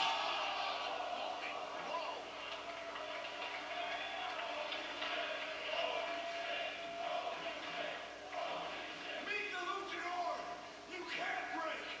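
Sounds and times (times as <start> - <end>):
arena crowd hubbub: 0.0 - 12.0.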